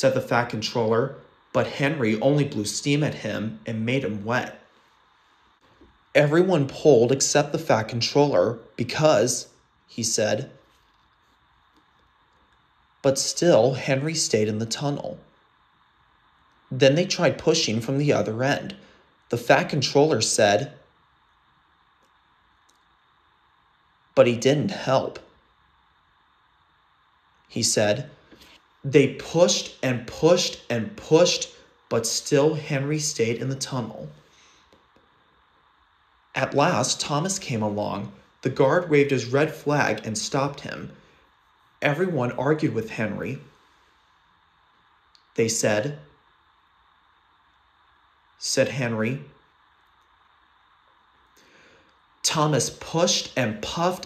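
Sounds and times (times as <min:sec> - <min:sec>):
faint recording hiss: 0:00.0 - 0:54.0.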